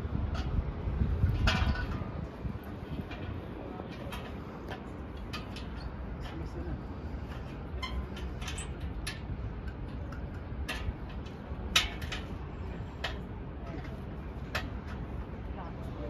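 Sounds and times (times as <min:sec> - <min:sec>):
wind rumble on microphone: 0:00.0 - 0:16.0
faint voices: 0:02.9 - 0:05.4.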